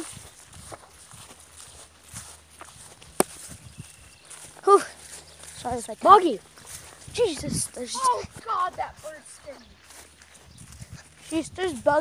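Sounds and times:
soft footsteps on ground: 0.0s - 12.0s.

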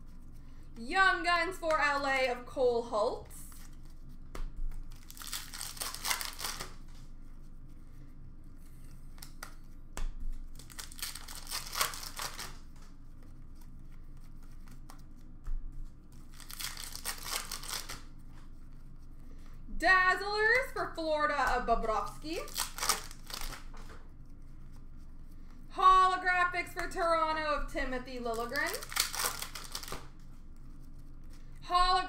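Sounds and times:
card pack wrapper crinkling and tearing: 4.7s - 6.9s, 10.5s - 12.7s, 16.2s - 18.1s, 22.4s - 23.7s, 28.4s - 30.3s.

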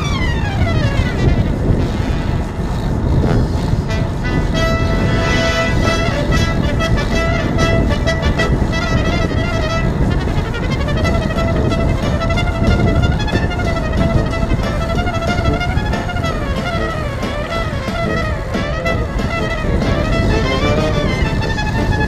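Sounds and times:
music of long held notes: 0.0s - 22.0s
wind rushing over microphone: 0.0s - 22.0s.

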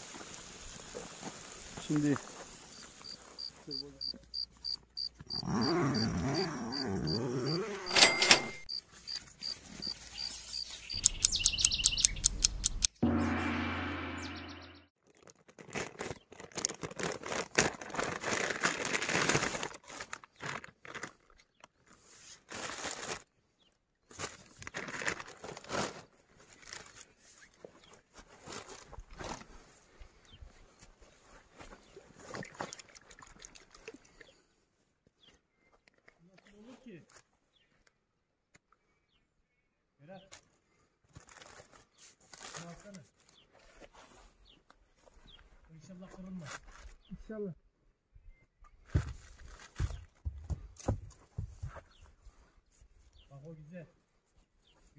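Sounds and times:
high ticks: 10.9s - 13.0s
short loud pitched sound: 13.0s - 14.9s
plastic packaging crinkling: 15.0s - 21.5s, 24.2s - 27.0s, 41.2s - 42.6s.

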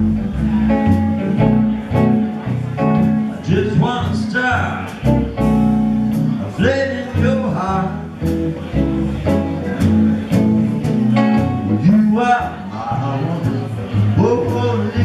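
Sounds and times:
blues guitar: 0.0s - 15.0s
plucked upright double bass: 0.0s - 15.0s.

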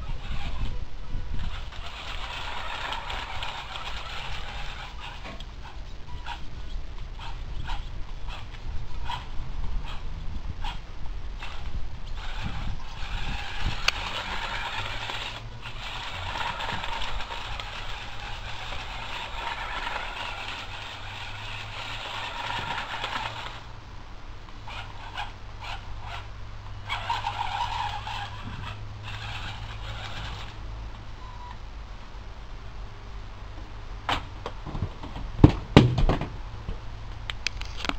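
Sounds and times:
short motor bursts: 0.0s - 10.0s, 11.4s - 23.8s, 24.6s - 31.5s
walking robot whirring and clattering: 0.0s - 10.8s, 11.4s - 23.6s, 24.6s - 30.6s.

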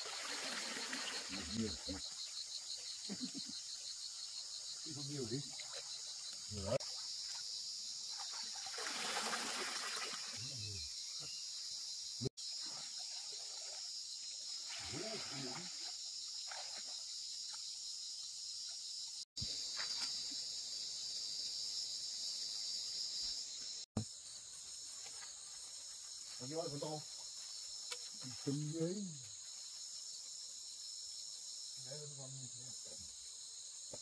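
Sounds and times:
insects chorus: 0.0s - 34.0s
water sloshing and splashing: 8.1s - 10.4s.

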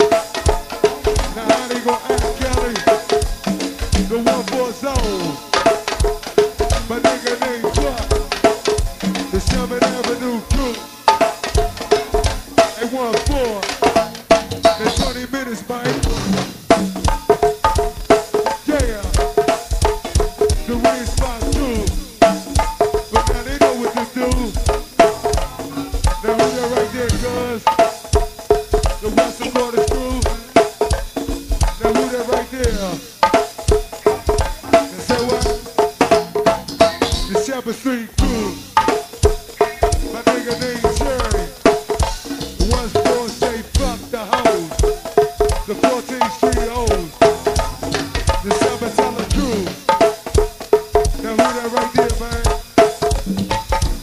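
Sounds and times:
live band drum groove: 0.0s - 54.0s
pitched percussion: 0.0s - 54.0s
person talking over music: 45.7s - 49.9s.

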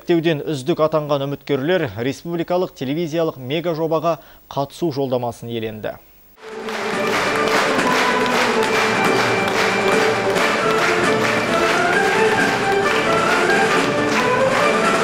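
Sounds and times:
live folk dance music: 6.4s - 15.0s.

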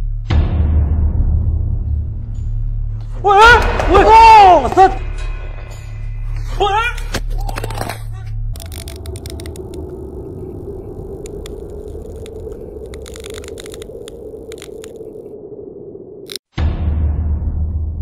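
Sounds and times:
low hum: 3.7s - 16.4s
crackling static hiss: 8.6s - 16.4s.

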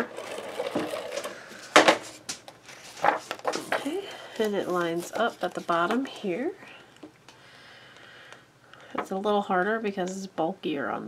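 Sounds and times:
tape runner running on paper: 0.0s - 1.4s
tape runner coming off paper: 0.0s - 3.7s.

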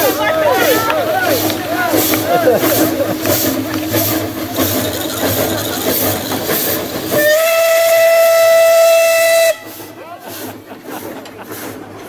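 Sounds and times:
steam locomotive hissing: 0.0s - 12.0s
steam whistle: 7.1s - 9.9s.

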